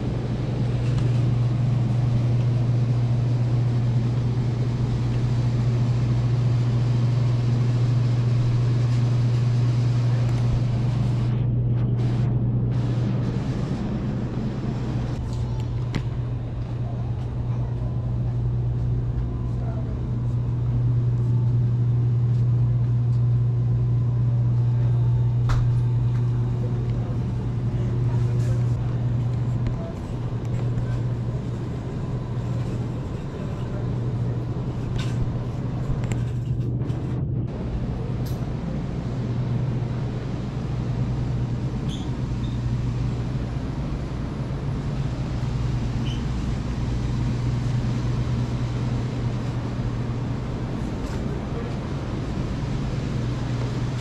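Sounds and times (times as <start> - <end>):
refrigerated cases humming: 0.0 - 54.0.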